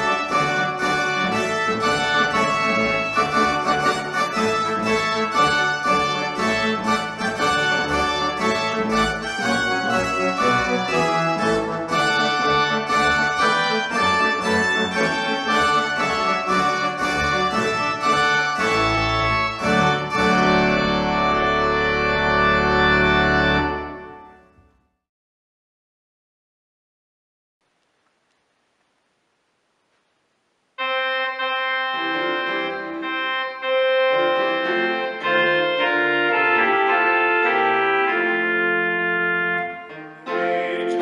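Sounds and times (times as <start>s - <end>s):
keyboard chords: 0.0s - 24.7s, 30.8s - 41.0s
organ playing a hymn: 0.0s - 24.7s, 30.8s - 41.0s.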